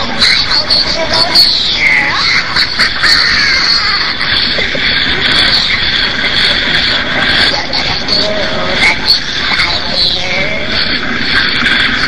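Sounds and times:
harsh raspy screeching voice: 0.0s - 6.4s, 7.2s - 12.0s.

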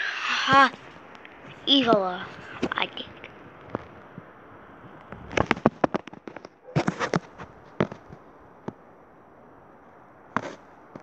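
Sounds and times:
fireworks cracking and popping: 5.0s - 8.2s.

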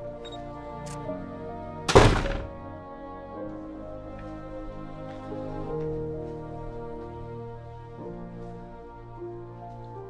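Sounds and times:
soft background music: 0.0s - 10.0s
loud thunk: 1.9s - 2.6s.

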